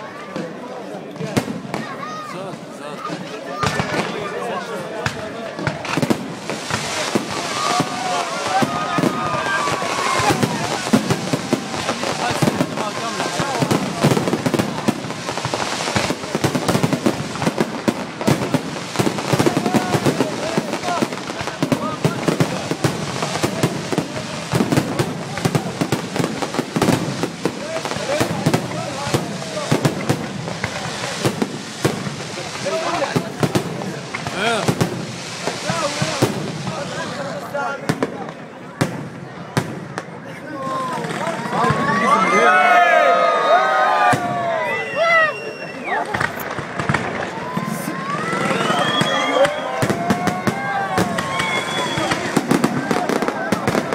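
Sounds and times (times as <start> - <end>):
fireworks bangs and crackles: 0.0 - 53.9.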